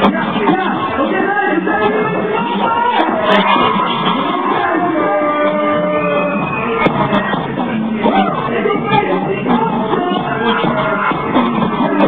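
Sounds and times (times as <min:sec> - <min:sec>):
live amplified music: 0:00.0 - 0:12.0.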